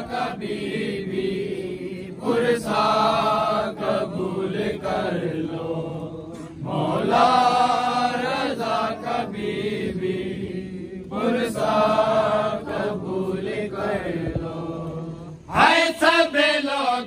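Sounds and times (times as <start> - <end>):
men chanting a lament: 0.0 - 17.0.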